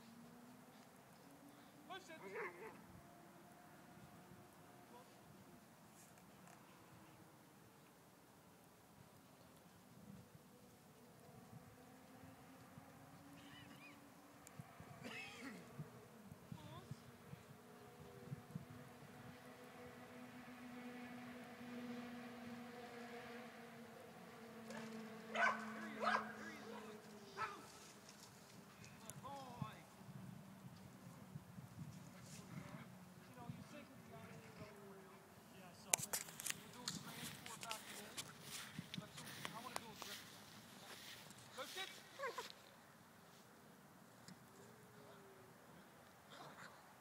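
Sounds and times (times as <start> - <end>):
distant voices calling out: 0.1 - 5.8, 11.1 - 18.1, 22.2 - 30.0
dog barking: 2.2 - 2.8, 25.3 - 27.7
dog yelping: 2.2 - 2.8, 25.4 - 26.8.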